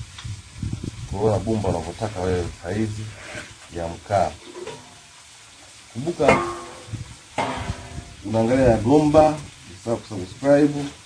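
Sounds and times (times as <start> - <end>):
crackly scraping noise: 1.7 - 5.1, 6.6 - 8.3.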